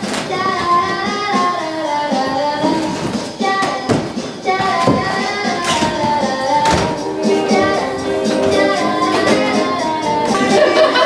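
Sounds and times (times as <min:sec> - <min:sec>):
background music: 0:00.0 - 0:11.0
high singing voice: 0:00.0 - 0:11.0.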